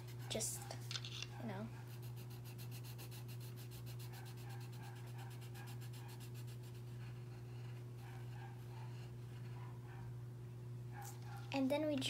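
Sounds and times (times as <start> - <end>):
pencil scribbling on paper: 0.0 - 0.7, 1.4 - 9.6
steady low hum: 0.0 - 12.0.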